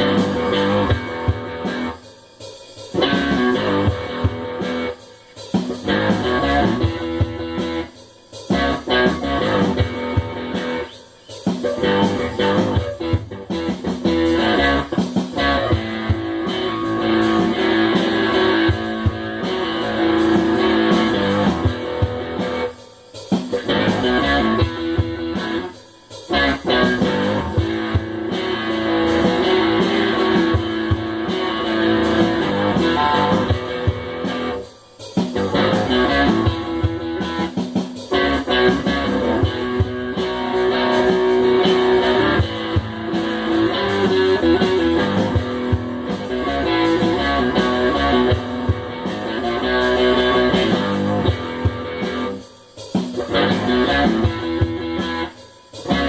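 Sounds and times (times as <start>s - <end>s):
improvised guitar playing: 0.0s - 2.0s, 2.8s - 56.0s
programmed drum beat: 0.0s - 56.0s.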